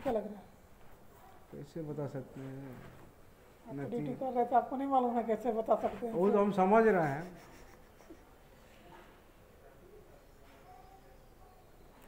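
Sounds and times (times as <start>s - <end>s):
person speaking: 3.7s - 7.6s.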